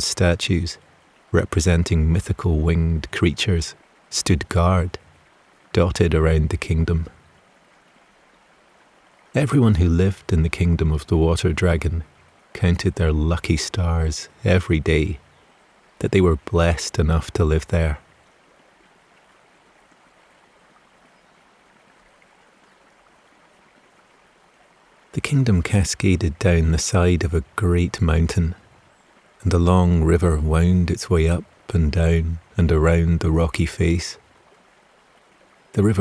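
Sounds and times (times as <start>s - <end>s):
running water: 0.0s - 36.0s.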